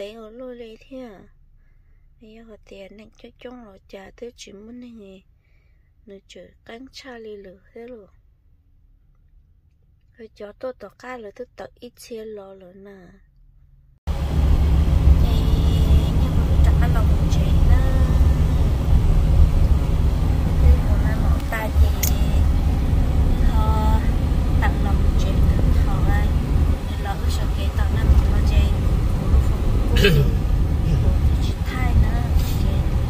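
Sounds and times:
road and engine rumble: 14.1s - 33.0s.

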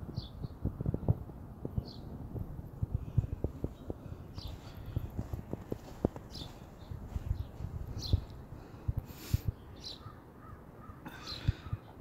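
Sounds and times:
birds calling: 0.0s - 1.1s, 1.7s - 2.2s, 3.0s - 12.0s
footsteps in deep snow: 3.0s - 8.4s.

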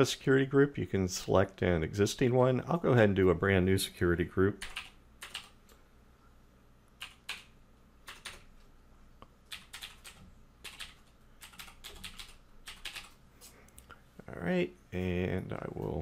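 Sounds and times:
faint keyboard typing: 4.6s - 5.8s, 7.0s - 14.0s.

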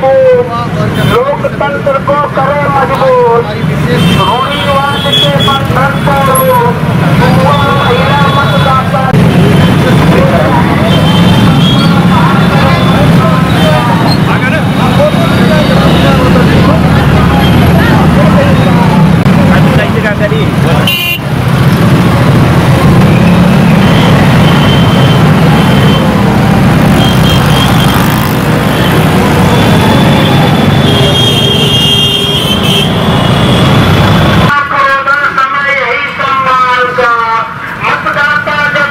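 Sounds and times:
motorcycle engines running: 0.2s - 31.6s
horn toots: 20.8s - 21.3s, 26.9s - 34.5s.

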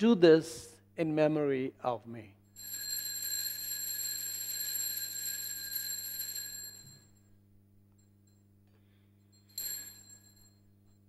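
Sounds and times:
altar bell ringing: 9.3s - 11.0s.

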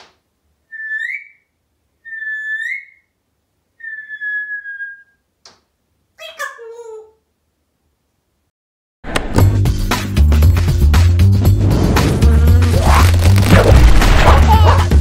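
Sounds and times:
parrot whistling: 0.7s - 3.1s, 3.8s - 5.2s.

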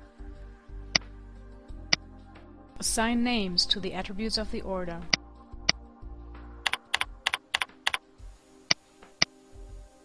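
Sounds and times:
soft background music: 0.0s - 10.0s
keyboard keys clicking: 6.6s - 8.0s.

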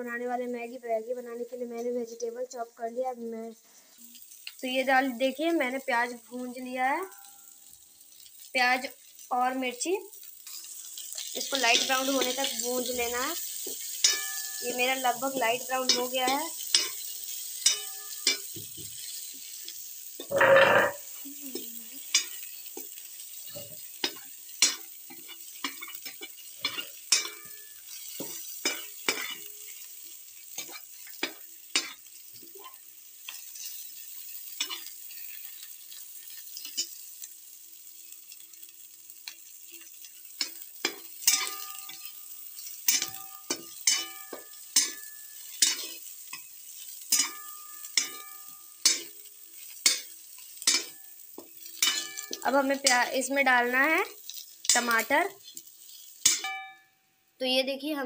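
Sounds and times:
onions sizzling in oil: 0.0s - 58.0s
metal ladle scraping and tapping pan: 13.7s - 14.6s, 17.6s - 19.2s, 20.2s - 21.0s, 24.0s - 29.5s, 40.4s - 53.0s, 54.3s - 56.7s.

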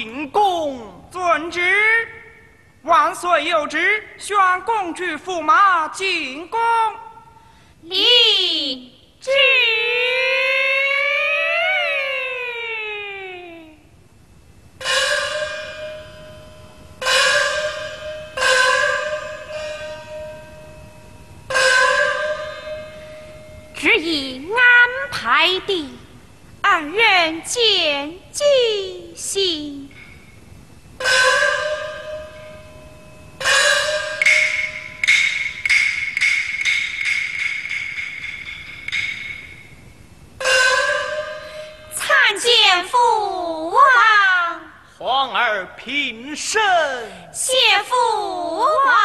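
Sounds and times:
steady high ringing tone: 1.4s - 4.6s, 14.1s - 44.8s
small gong ringing: 14.8s - 24.3s, 31.0s - 42.3s
quick percussion strikes: 31.0s - 41.9s.

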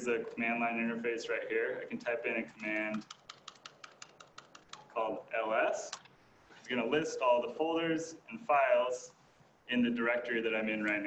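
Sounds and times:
laptop keyboard keys clicking: 2.5s - 5.0s.

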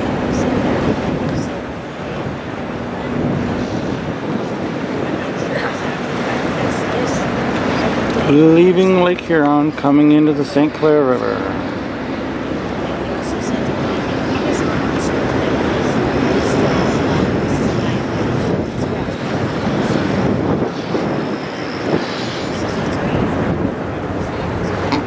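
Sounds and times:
indistinct voices: 0.0s - 25.0s
steady outdoor rumble: 0.0s - 25.0s.

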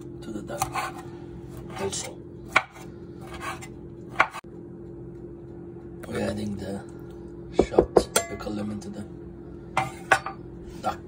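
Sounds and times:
knife scraping cutting board: 0.5s - 4.4s.

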